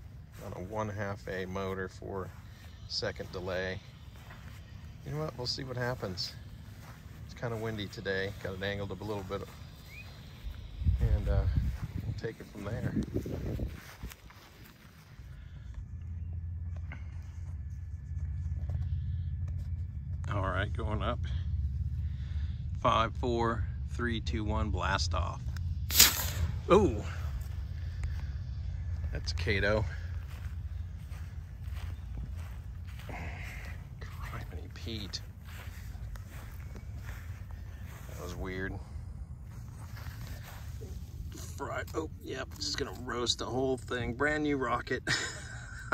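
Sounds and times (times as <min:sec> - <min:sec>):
footsteps on dry grass: 0:00.0 - 0:45.9
wind rumble on microphone: 0:01.9 - 0:41.8
wind buffeting microphone: 0:08.1 - 0:15.2.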